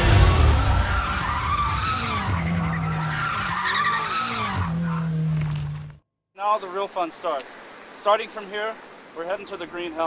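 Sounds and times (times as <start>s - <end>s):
car engine revving hard: 0.0s - 5.4s
tyres squealing: 0.6s - 5.9s.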